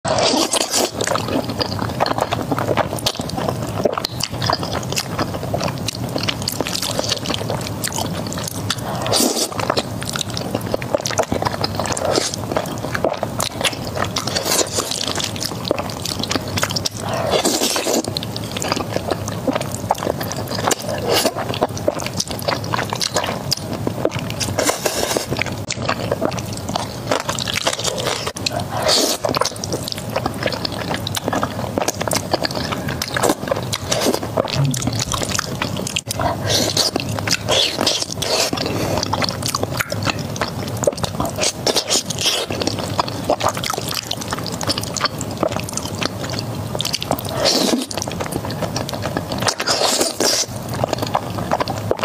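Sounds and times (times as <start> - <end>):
slurping noodles: 0.1 - 7.6, 8.3 - 44.0, 47.0 - 52.0
sticky chewing: 0.1 - 52.0.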